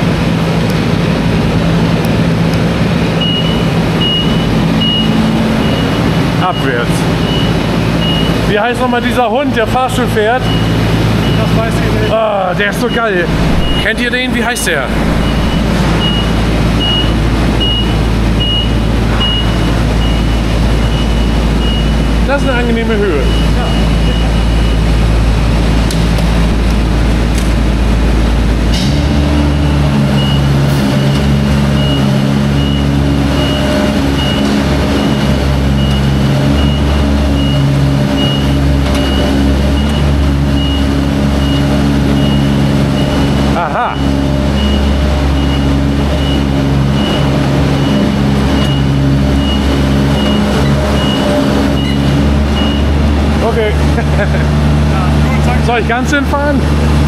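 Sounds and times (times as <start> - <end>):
motor hum: 0.0 - 8.5, 10.5 - 55.8
high motion alarm beeps: 3.2 - 8.4, 12.8 - 22.1, 29.5 - 53.0.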